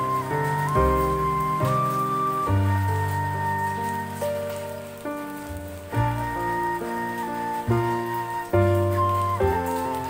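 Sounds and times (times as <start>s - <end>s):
rain falling: 0.0s - 10.0s
slow soft instrumental music: 0.0s - 10.0s.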